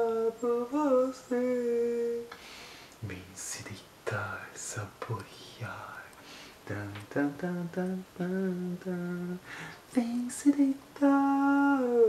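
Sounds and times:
man whispering: 3.0 - 6.4.

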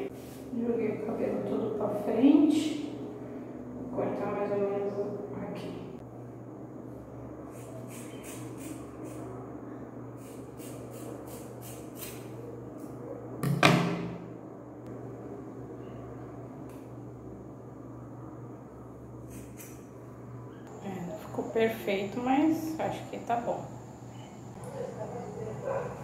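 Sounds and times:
steady low hum: 0.0 - 26.0
scissors snipping hair: 7.5 - 9.2, 10.2 - 12.9
loud knock: 13.4 - 14.2.

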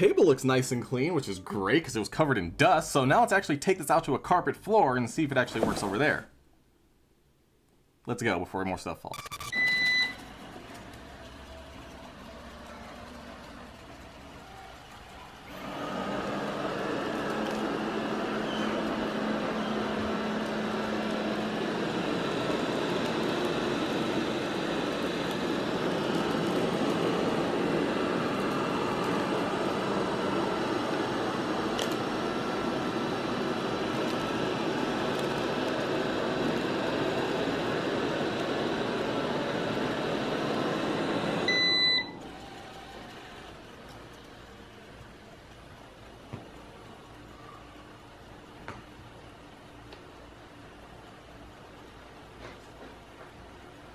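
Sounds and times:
short electronic beep: 9.1 - 10.2, 41.5 - 42.2
robot vacuum running: 9.6 - 45.5.

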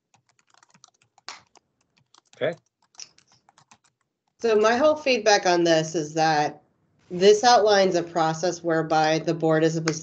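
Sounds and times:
computer keyboard typing: 0.0 - 4.9.

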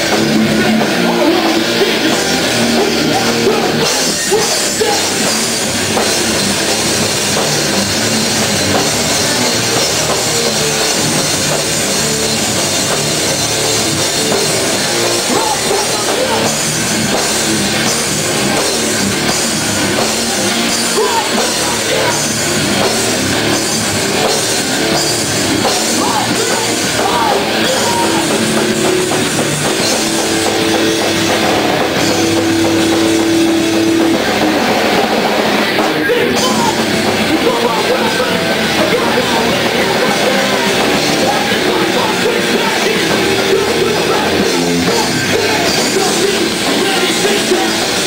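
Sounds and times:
drum kit pounding: 0.0 - 48.0
rock band playing loud: 0.0 - 48.0.

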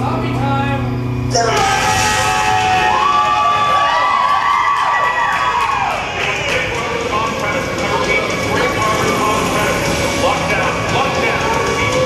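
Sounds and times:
music: 0.0 - 12.0
crowd cheering and shouting: 1.4 - 12.0
high whoops: 1.5 - 6.6.

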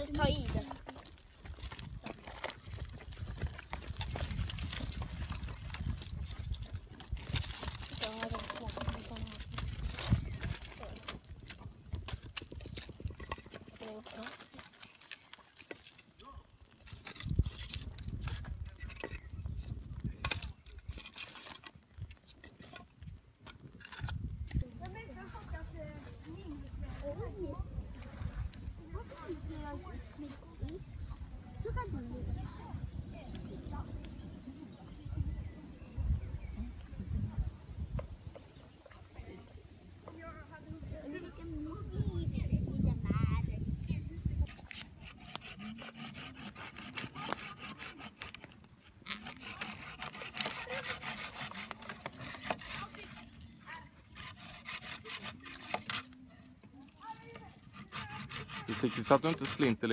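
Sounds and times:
wood fire crackling: 0.0 - 25.3.

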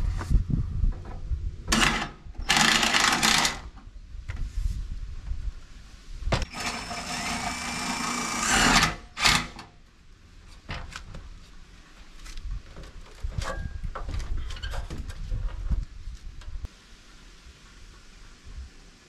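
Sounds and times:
cordless drill whining: 1.8 - 3.6, 6.4 - 9.7.

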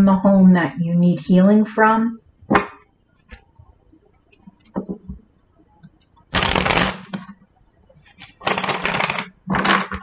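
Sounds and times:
cards being shuffled: 6.4 - 7.3, 8.1 - 10.0.

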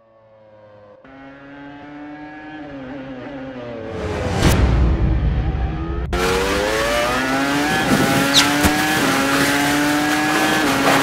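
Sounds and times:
racing car engine passing: 1.1 - 11.0.

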